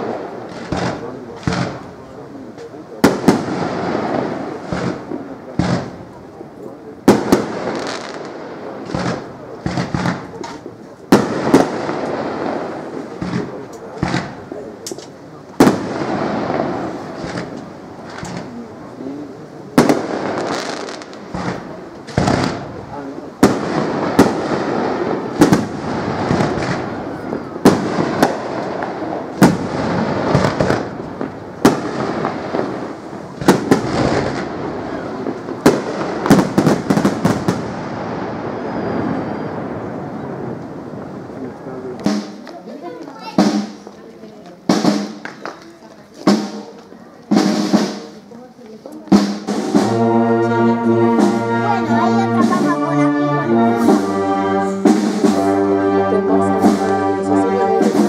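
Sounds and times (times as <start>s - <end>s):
firework shells bursting: 0.0s - 2.0s, 7.0s - 18.8s, 19.8s - 37.9s.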